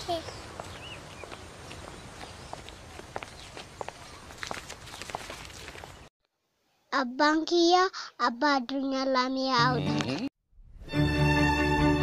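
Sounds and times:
footsteps on outdoor path: 0:00.0 - 0:06.1
outdoor ambience: 0:00.0 - 0:10.9.

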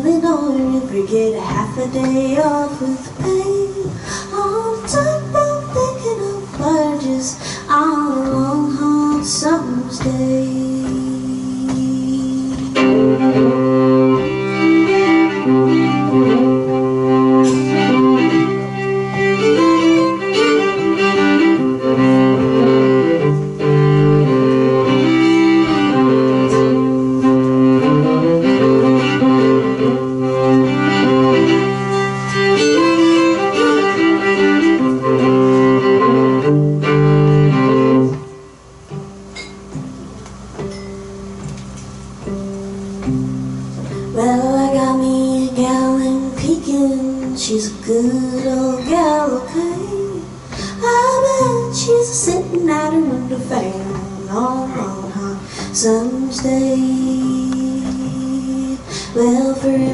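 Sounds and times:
string band backing: 0:00.0 - 0:59.9
fiddle playing: 0:04.4 - 0:39.3.

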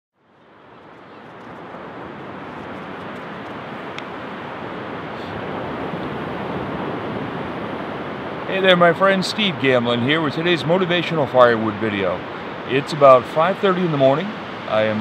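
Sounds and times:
waves breaking: 0:01.3 - 0:15.0.

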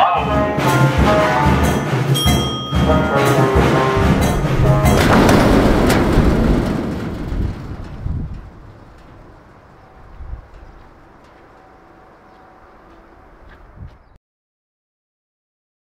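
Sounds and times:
loud rumbling crash: 0:02.8 - 0:12.3.

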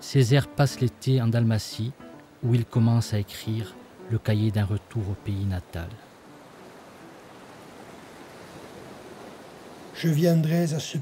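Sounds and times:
sea surf washing over rocks: 0:02.7 - 0:11.0.

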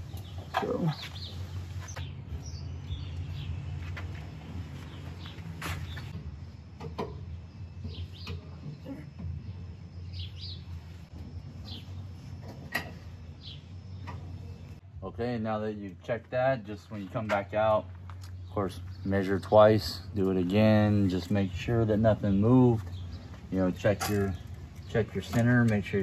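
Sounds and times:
songbirds chirping: 0:00.0 - 0:26.0.

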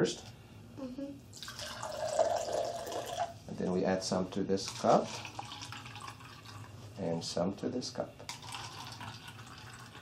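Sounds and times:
liquid trickling into cup: 0:01.3 - 0:03.4, 0:04.6 - 0:06.8, 0:08.3 - 0:10.0.

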